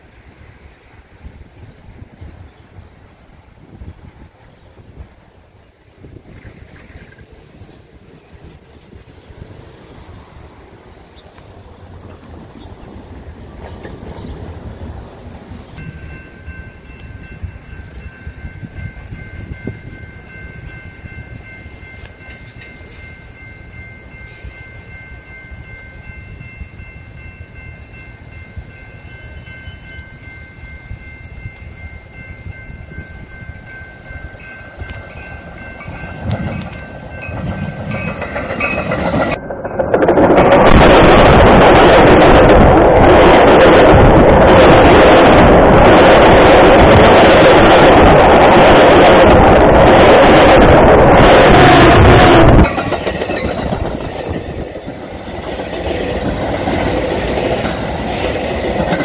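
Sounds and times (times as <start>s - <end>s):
train rumble: 0.0s - 59.0s
train rumbling and clattering overhead: 0.0s - 59.0s.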